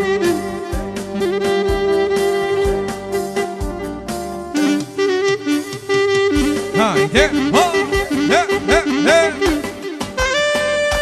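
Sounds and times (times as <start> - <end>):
clarinet playing glissandi: 4.6 - 11.0
electronic keyboard holding a note: 6.5 - 10.0.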